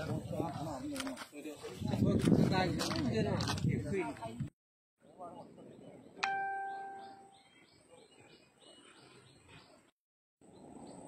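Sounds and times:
bell-like ding: 0:06.2 - 0:07.4.

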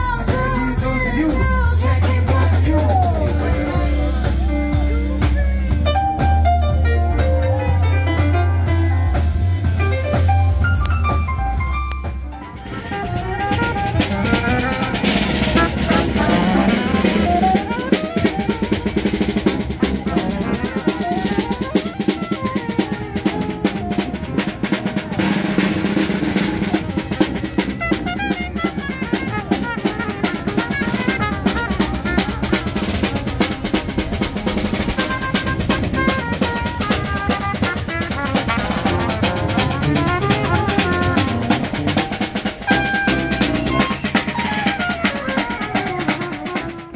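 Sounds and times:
brass band playing: 0:00.0 - 0:46.9
fast drum and cymbal beat: 0:00.0 - 0:46.9
sousaphone bass line: 0:00.0 - 0:46.9.

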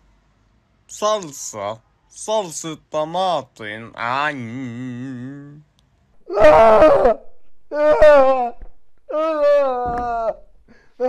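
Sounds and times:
man wailing: 0:06.3 - 0:10.4.

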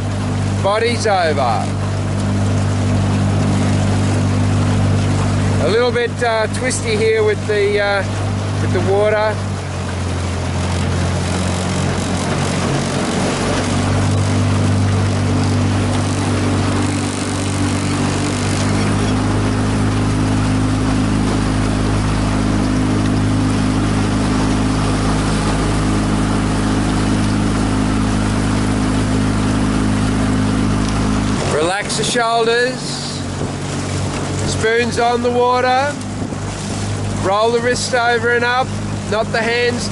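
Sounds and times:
outboard motor running: 0:00.0 - 0:39.9
water around hull: 0:00.0 - 0:39.9.

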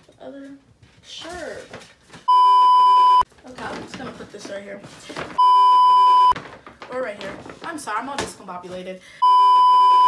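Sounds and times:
censor bleep tone: 0:02.3 - 0:03.2, 0:05.4 - 0:06.4, 0:09.2 - 0:10.0.

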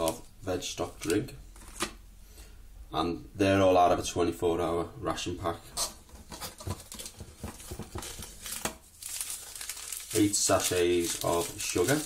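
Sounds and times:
paper sachets crinkling: 0:06.6 - 0:12.0.

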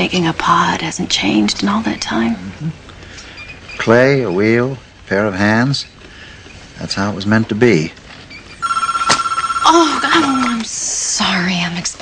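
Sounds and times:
electronic telephone ringer: 0:08.6 - 0:10.7.

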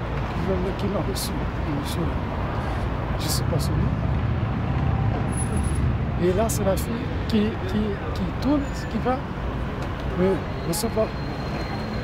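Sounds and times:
city street traffic rumble: 0:00.0 - 0:12.0
faint voices of passers-by: 0:00.0 - 0:12.0.

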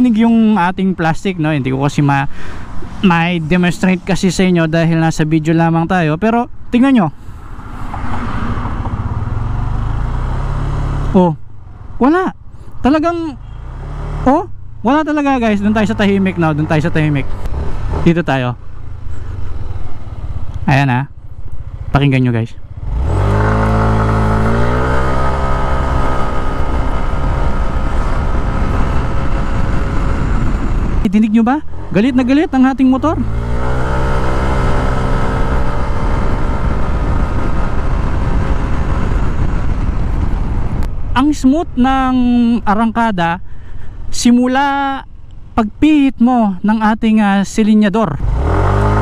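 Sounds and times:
scooter engine revving: 0:22.7 - 0:31.0, 0:32.9 - 0:39.6, 0:48.2 - 0:49.0.

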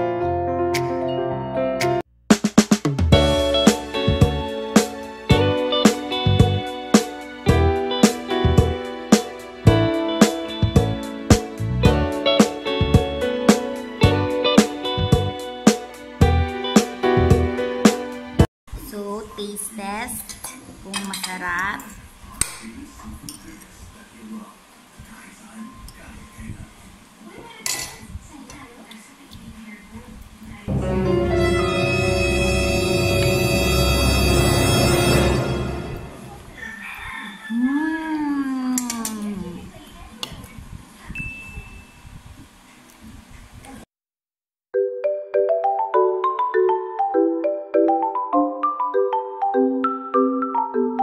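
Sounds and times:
loud music: 0:00.0 - 0:18.5, 0:30.7 - 0:36.5
cutlery clinking on a plate: 0:27.7 - 0:28.0.

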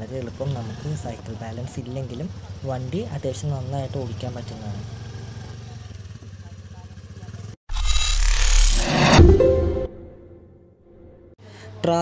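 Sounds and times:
scooter engine running: 0:00.0 - 0:07.6.

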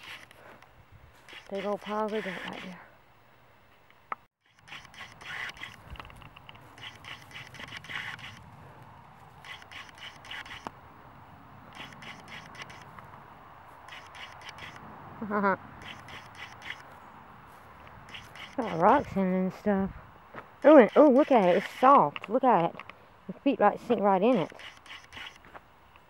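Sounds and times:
footsteps crunching on gravel: 0:20.3 - 0:20.6.

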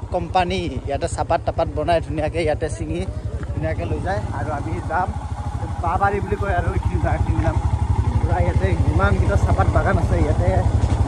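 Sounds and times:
small engine running: 0:00.0 - 0:11.0
people talking: 0:00.2 - 0:10.7.

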